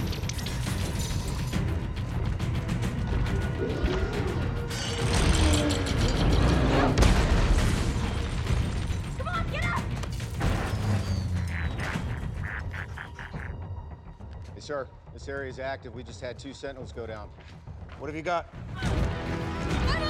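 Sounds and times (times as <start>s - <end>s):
action film music: 0.0s - 20.0s
booms and crashes: 5.0s - 9.1s.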